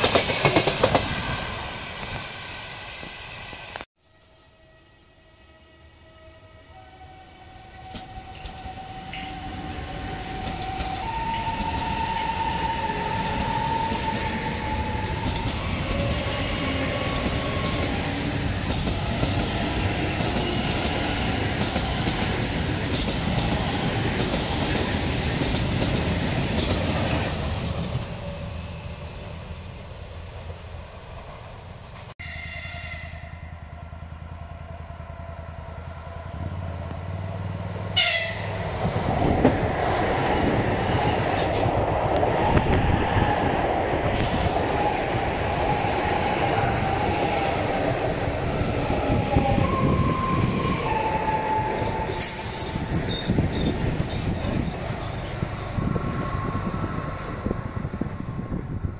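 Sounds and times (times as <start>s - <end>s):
train running past: 0.0s - 58.9s
train horn: 4.1s - 17.8s, 32.2s - 36.7s, 37.9s - 38.7s.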